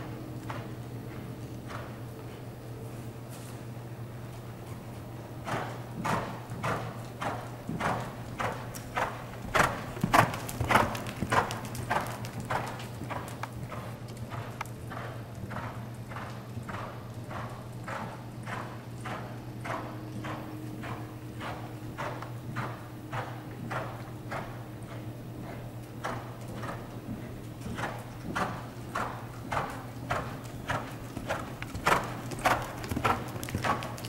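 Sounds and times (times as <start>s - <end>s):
horse hoofbeats trotting on dirt: 0.0s - 34.0s
steady low hum: 0.0s - 34.0s.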